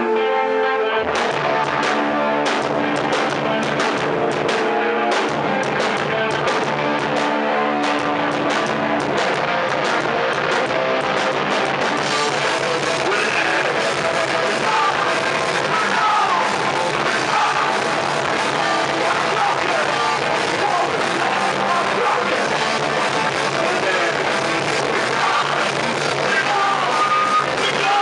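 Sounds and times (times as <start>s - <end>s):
electric guitar riff: 0.0s - 28.0s
punk band playing loud and fast: 1.0s - 28.0s.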